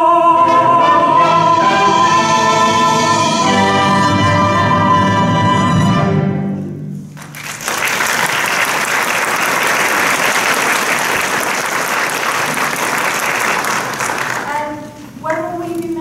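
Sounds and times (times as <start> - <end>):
audience applauding: 7.1 - 14.8.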